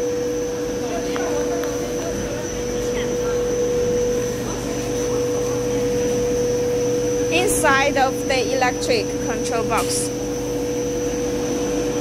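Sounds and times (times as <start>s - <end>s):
machine drone: 0.0s - 12.0s
mid-pitched whine: 0.0s - 12.0s.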